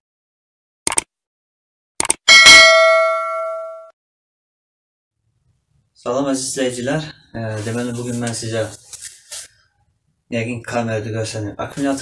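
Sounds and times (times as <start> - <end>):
notification bell ding: 2.3 - 3.9.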